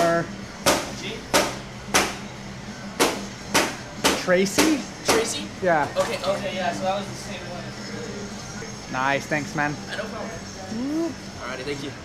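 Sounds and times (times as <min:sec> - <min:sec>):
steady low hum: 0:00.0 - 0:05.7.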